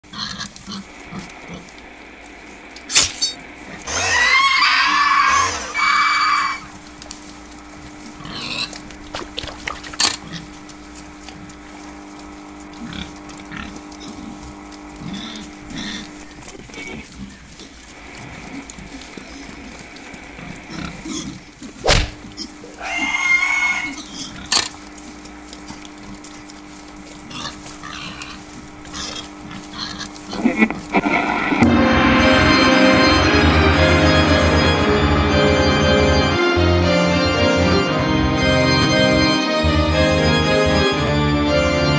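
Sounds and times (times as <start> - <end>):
pig squealing: 2.9 - 6.8, 20.4 - 24.8, 27.3 - 31.5
low hum: 5.6 - 22.8, 24.4 - 41.9.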